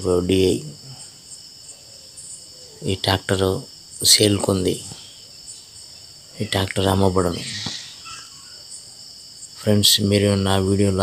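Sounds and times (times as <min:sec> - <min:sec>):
man's voice: 0:00.0 - 0:01.0, 0:02.8 - 0:05.1, 0:06.4 - 0:07.8, 0:09.6 - 0:11.0
insects chirring: 0:00.0 - 0:11.0.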